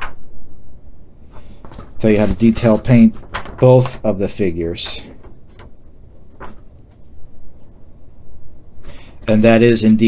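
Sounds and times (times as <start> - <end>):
paper rustling: 1.2 - 7.1.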